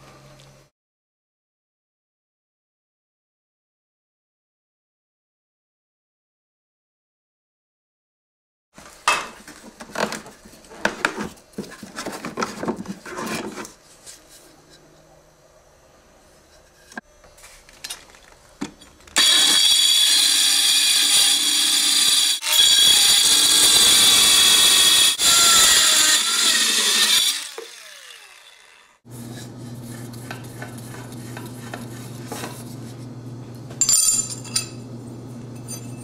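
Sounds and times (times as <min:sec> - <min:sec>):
saw motor winding down: 0:19.2 - 0:29.0
power saw cutting steel: 0:19.2 - 0:29.2
steady low hum: 0:29.1 - 0:36.0.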